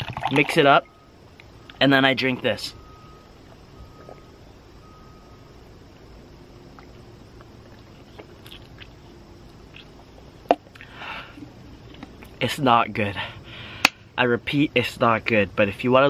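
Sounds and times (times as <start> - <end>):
background hiss: 0.0 - 16.0.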